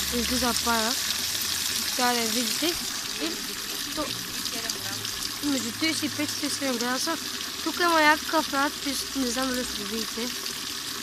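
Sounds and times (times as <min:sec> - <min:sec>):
water pouring into stone basin: 0:00.0 - 0:11.0.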